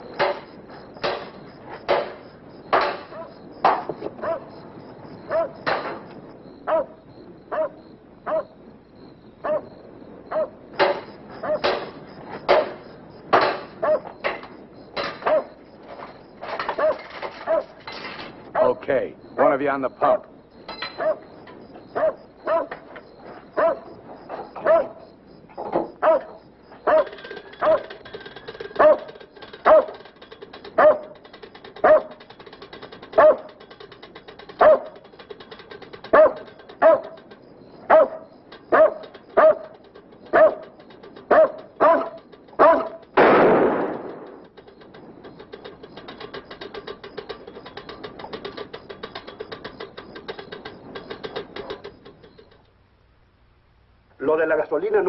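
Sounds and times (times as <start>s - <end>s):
dog barking: 3.1s - 3.4s, 4.2s - 4.5s, 5.3s - 5.7s, 6.6s - 8.6s, 9.4s - 9.7s, 10.3s - 10.6s, 11.4s - 11.7s, 13.8s - 14.2s, 15.2s - 15.6s, 16.7s - 17.8s, 18.5s - 18.8s, 19.4s - 20.3s, 21.0s - 21.3s, 21.9s - 22.8s, 23.6s - 23.9s, 24.5s - 25.0s, 26.0s - 27.9s, 28.8s - 30.0s, 30.8s - 31.2s, 31.8s - 32.2s, 33.2s - 33.6s, 34.6s - 35.0s, 36.0s - 37.3s, 37.9s - 40.7s, 41.3s - 43.0s
loud burst: 43.2s - 44.5s.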